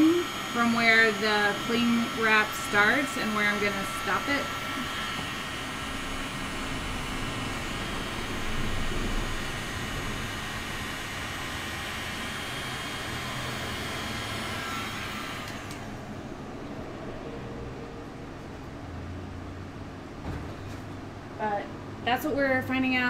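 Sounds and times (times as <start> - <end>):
heat gun blowing hot air: 0.0 - 16.0
faint motor whine: 0.0 - 23.0.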